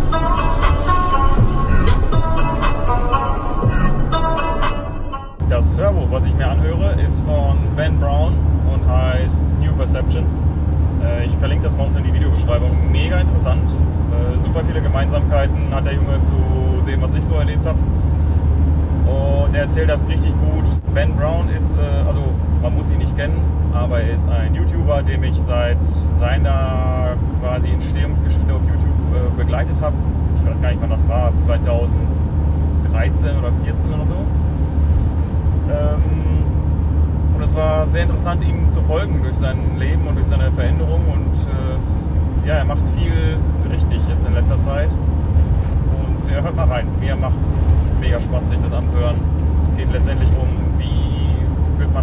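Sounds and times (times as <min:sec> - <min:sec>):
engine and road noise rumble: 0:00.0 - 0:52.0
man talking: 0:05.4 - 0:10.4, 0:11.0 - 0:17.9, 0:19.0 - 0:34.3, 0:35.7 - 0:36.6, 0:37.4 - 0:45.0, 0:45.8 - 0:52.0.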